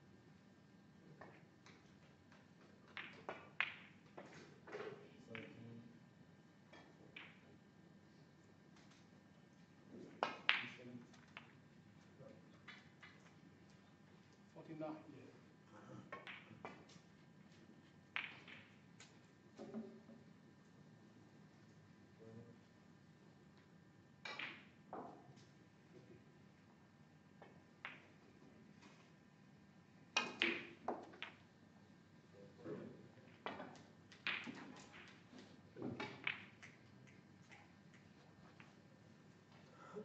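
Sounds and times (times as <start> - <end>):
snooker balls clacking: 2.8 - 5.6, 6.7 - 7.5, 9.9 - 11.6, 16.1 - 20.2, 24.2 - 26.1, 27.4 - 29.0, 30.2 - 31.5, 33.2 - 38.8.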